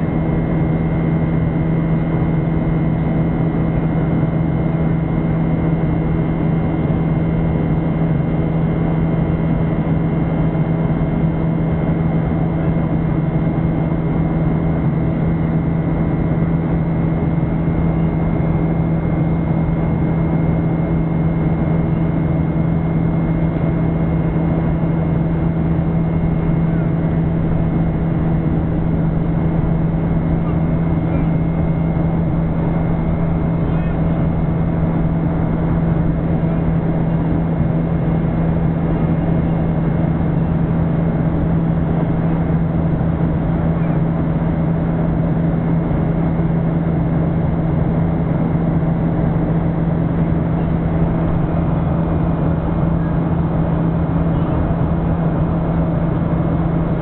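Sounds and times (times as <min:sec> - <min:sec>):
jet engine drone and whine: 0:00.0 - 0:57.0.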